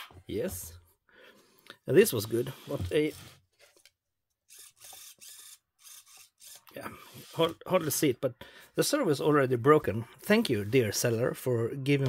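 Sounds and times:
servo buzzing: 4.5 - 7.4.

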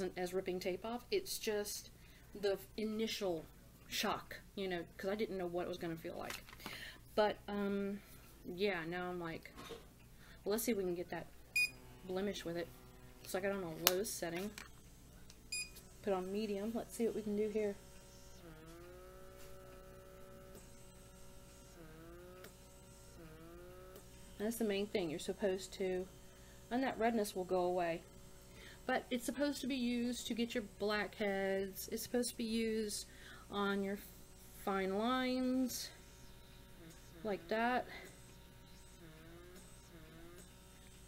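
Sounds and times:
faint motor whine: 0.0 - 41.0.

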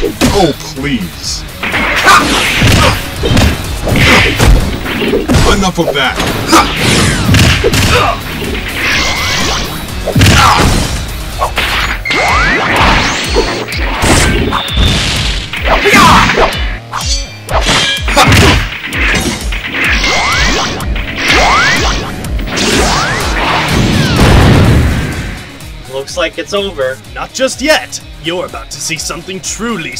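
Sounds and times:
background music: 0.0 - 29.9
punches and hits: 1.6 - 25.3.

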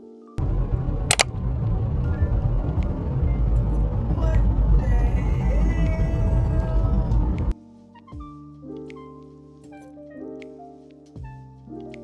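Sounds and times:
bass-heavy music track: 0.4 - 8.5.

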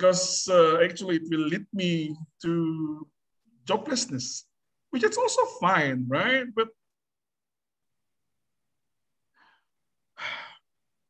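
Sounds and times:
man breathing: 9.3 - 10.8.

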